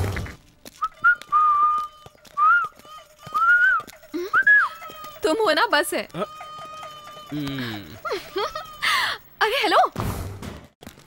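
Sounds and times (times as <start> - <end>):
person whistling a tune: 0.8 - 1.8, 2.4 - 2.7.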